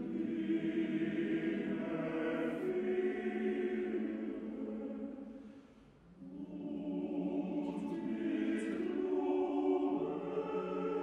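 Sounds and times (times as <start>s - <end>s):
male choir singing: 0.0s - 5.2s, 6.2s - 11.0s.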